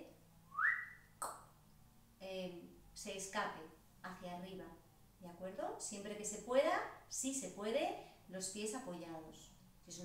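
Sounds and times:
person whistling rising note: 0:00.5 - 0:01.1.

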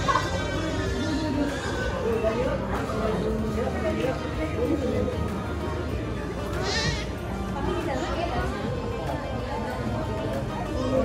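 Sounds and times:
background music: 0:00.0 - 0:11.0
crowd chatter: 0:00.0 - 0:11.0.

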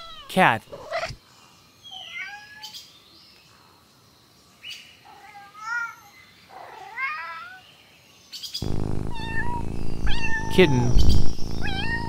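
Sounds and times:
cat meowing: 0:09.0 - 0:12.0.

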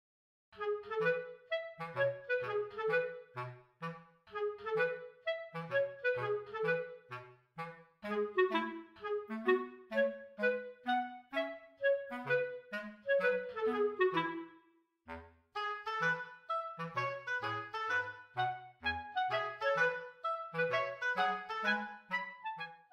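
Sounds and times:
light instrumental tune: 0:00.6 - 0:22.9.

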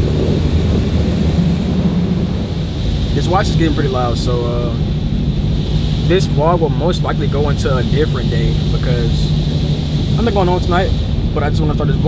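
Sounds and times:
car wash water spray rumble: 0:00.0 - 0:12.0.

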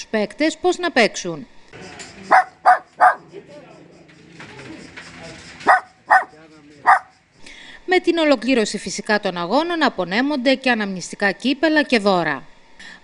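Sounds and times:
puppy yapping: 0:02.3 - 0:03.3, 0:05.6 - 0:07.1.

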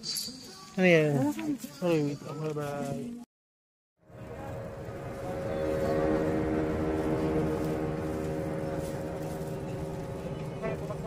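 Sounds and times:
rumbling street noise: 0:04.0 - 0:11.0
vehicle engine droning: 0:04.0 - 0:11.0.

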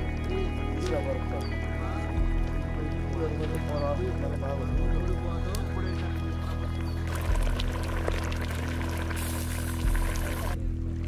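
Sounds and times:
background music with held tones: 0:00.0 - 0:11.0
curry bubbling in a pot: 0:07.1 - 0:10.6.

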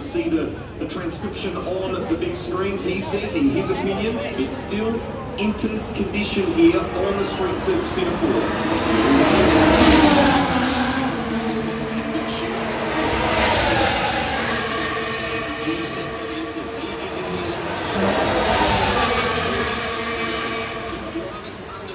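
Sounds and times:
racing cars passing by: 0:00.0 - 0:21.9.

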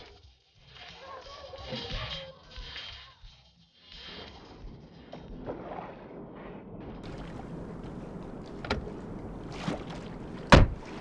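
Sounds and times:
car door slamming: 0:07.3 - 0:09.1, 0:10.2 - 0:11.0.

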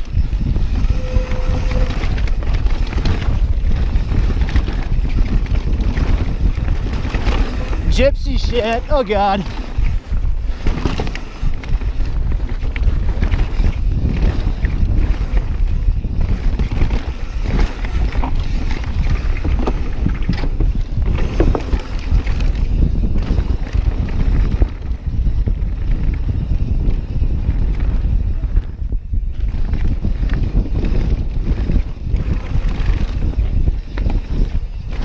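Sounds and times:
bike tyres rumbling on dirt: 0:00.0 - 0:35.0
small rattles: 0:00.0 - 0:35.0
wind buffeting microphone: 0:00.0 - 0:35.0.

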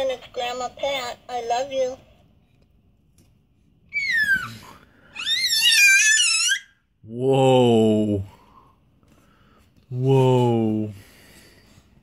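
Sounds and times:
baby squealing: 0:03.9 - 0:06.8.

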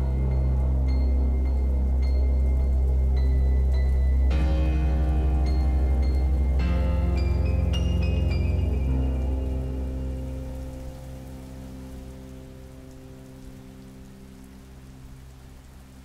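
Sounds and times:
background music held chord: 0:00.0 - 0:16.0
faint sustained tones: 0:00.0 - 0:16.0
steady rain: 0:00.0 - 0:16.0.

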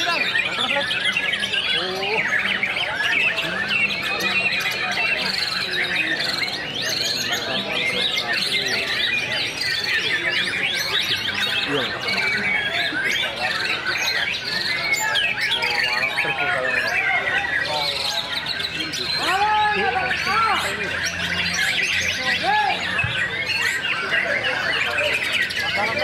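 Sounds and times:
birds singing: 0:00.0 - 0:26.0.

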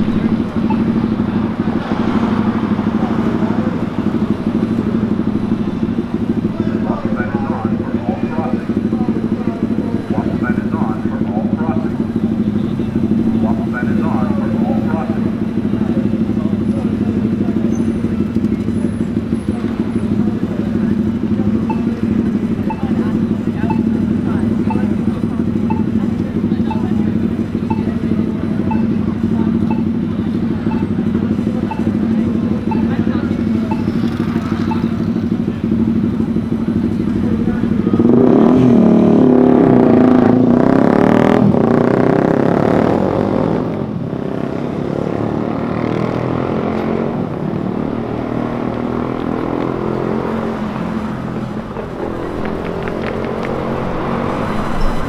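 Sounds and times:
crowd voices: 0:00.0 - 0:40.8, 0:42.7 - 0:55.0
traffic hum: 0:00.0 - 0:55.0
vehicle engine accelerating: 0:00.0 - 0:55.0
faint regular ticking: 0:30.7 - 0:35.3.

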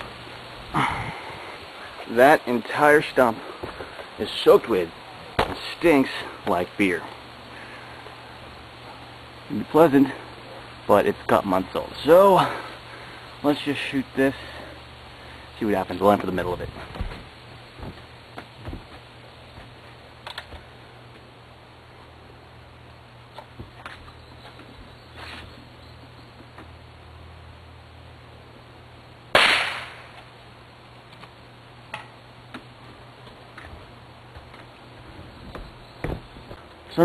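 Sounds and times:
pellet gun shot crack: 0:29.3 - 0:30.3.

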